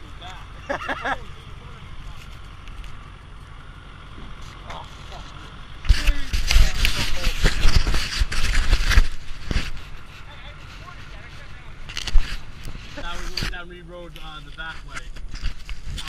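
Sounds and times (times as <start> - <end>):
camera handling rubbing and knocking: 5.8 - 11.2, 11.8 - 13.5, 14.5 - 16.0.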